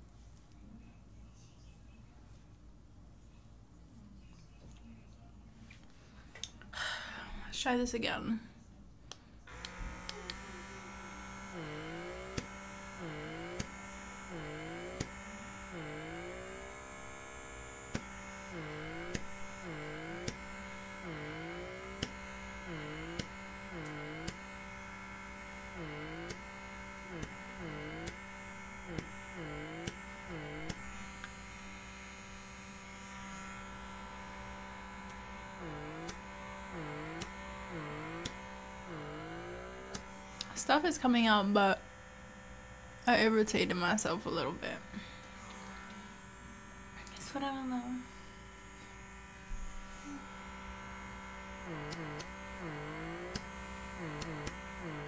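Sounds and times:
pore vacuum motor hum: 8.5s - 55.0s.

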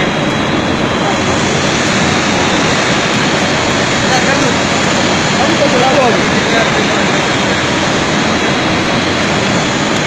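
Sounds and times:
stranding machine running: 0.0s - 10.0s.

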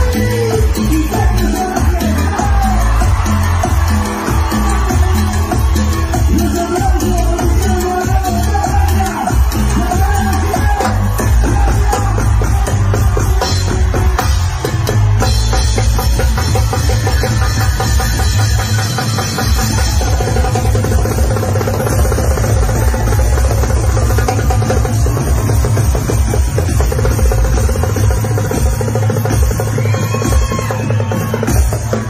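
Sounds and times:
drums and percussion: 0.0s - 32.0s
heavy bass: 0.0s - 32.0s
live cumbia band playing: 0.0s - 32.0s.

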